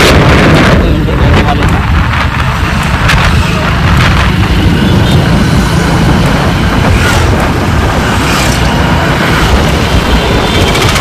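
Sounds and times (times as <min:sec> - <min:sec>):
motorcycle engine: 0:00.0 - 0:11.0
wind rushing: 0:00.0 - 0:11.0.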